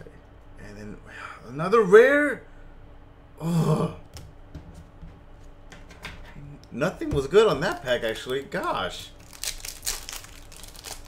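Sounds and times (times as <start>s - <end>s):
foil wrapper crinkling and tearing: 7.6s - 11.0s.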